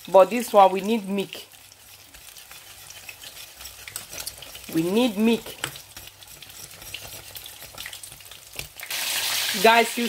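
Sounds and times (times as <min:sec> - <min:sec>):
whisk stirring in a steel pot: 0:00.0 - 0:09.8
fish fingers sizzling in oil: 0:00.0 - 0:10.0.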